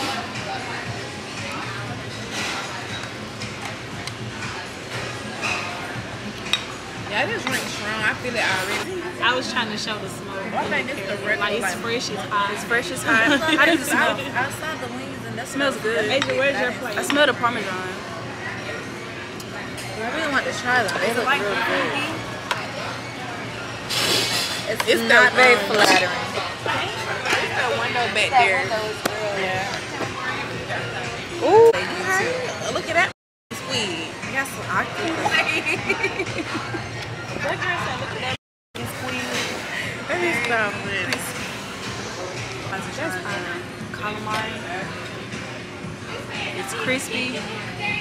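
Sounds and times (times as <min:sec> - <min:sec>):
background chatter: 0:00.0 - 0:48.0
restaurant music: 0:00.0 - 0:48.0.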